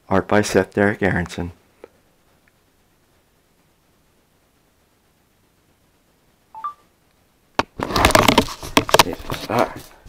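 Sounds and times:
smartphone two-note beep: 6.6 - 6.8
handling noise: 7.6 - 10.0.

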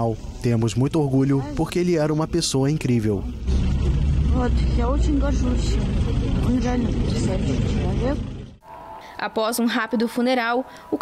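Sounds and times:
low outdoor rumble: 0.0 - 10.8
woman talking: 4.3 - 8.2, 9.1 - 11.0.

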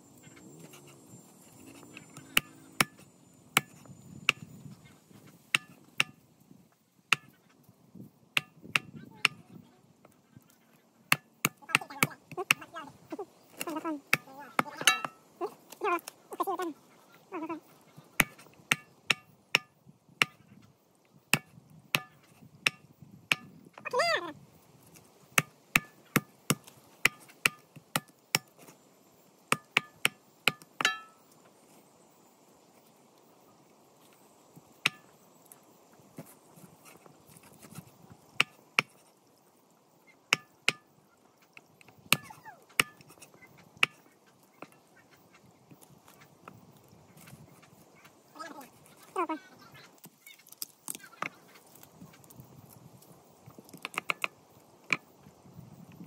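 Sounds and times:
cleaver chopping on wooden plank: 2.3 - 3.0, 5.5 - 6.2, 18.2 - 20.4, 21.3 - 23.5, 25.4 - 28.5, 29.5 - 31.2, 40.3 - 40.8, 42.1 - 43.1.

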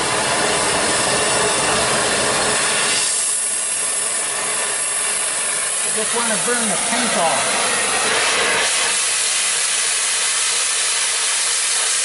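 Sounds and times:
gas torch flame hissing: 0.0 - 12.0.

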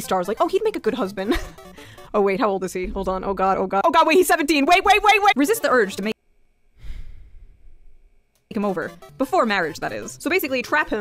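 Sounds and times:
person sighing: 6.8 - 7.6.

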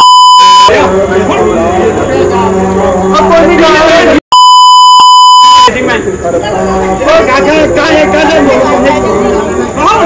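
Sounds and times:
censor bleep: 4.9 - 5.7.

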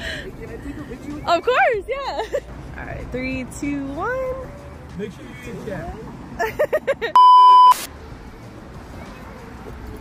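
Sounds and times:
electronic bleep tone: 7.2 - 7.9.

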